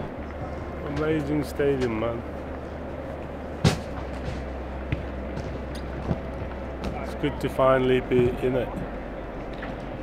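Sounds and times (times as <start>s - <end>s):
low background hum: 0.0s - 10.0s
faint thuds: 3.6s - 7.1s.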